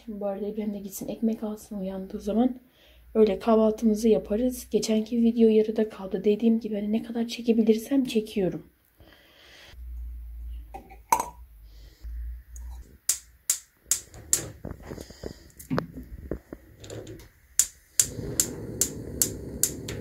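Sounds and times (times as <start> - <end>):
gas burner rushing: 16.4 - 20.0
gas igniter clicking: 17.2 - 20.0.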